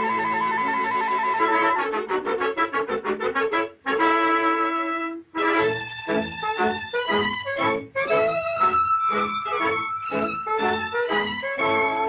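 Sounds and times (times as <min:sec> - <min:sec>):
orchestral cartoon music with brass: 0:00.0 - 0:12.0.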